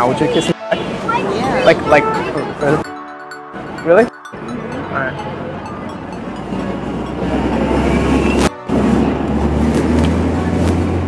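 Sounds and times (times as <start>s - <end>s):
passing vehicles rumble: 4.4s - 11.0s.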